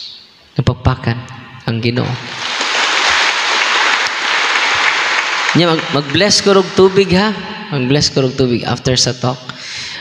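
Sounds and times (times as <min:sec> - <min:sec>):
audience applauding: 0:02.1 - 0:07.2.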